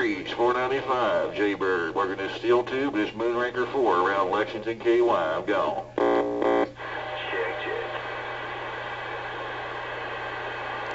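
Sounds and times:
low steady hum: 0.0 - 10.9
radio static hiss: 0.0 - 10.9.

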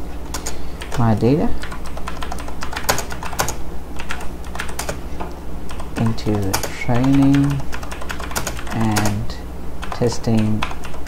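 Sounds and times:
low steady hum: 0.0 - 11.0
typing on computer keyboard: 0.3 - 1.0, 1.6 - 5.0, 5.7 - 9.2, 9.8 - 11.0.

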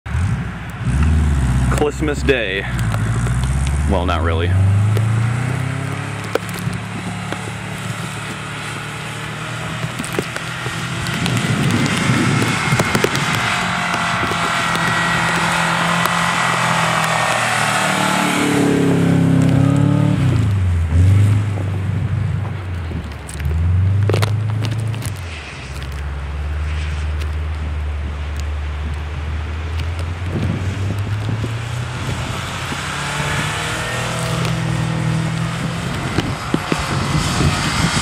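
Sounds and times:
car engine revving: 0.1 - 38.0
wheels churning through snow: 0.4 - 21.8, 22.5 - 38.0.

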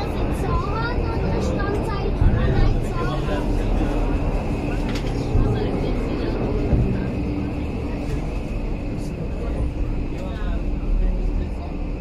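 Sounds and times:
passengers talking: 0.0 - 12.0
railcar rumble and hum: 0.0 - 12.0.

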